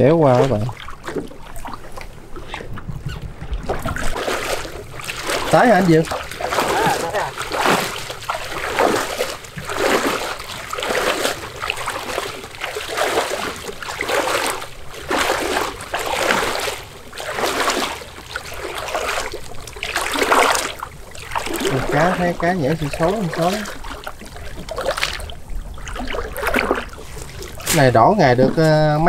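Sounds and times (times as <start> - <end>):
water splashing and sloshing: 0.0 - 29.0.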